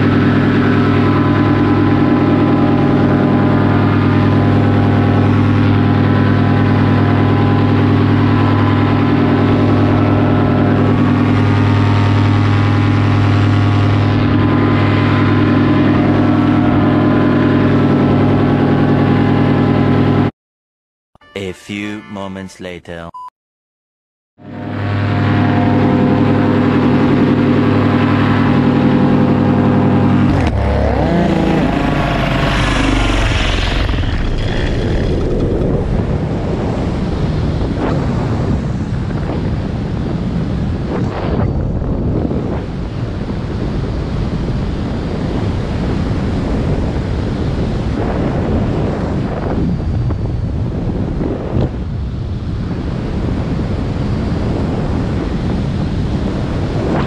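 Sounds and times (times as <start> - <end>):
paramotor engine and propeller: 0.0 - 20.3, 24.4 - 57.0
wind rushing over microphone: 0.0 - 20.3, 24.6 - 57.0.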